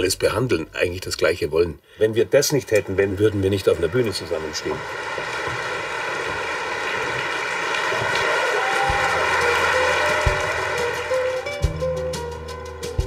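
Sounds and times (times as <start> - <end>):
audience applauding: 3.0 - 11.9
music with bass line: 8.9 - 13.0.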